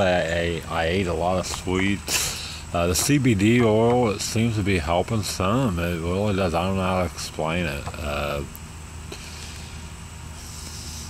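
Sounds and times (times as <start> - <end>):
faint hiss: 0.0 - 11.0.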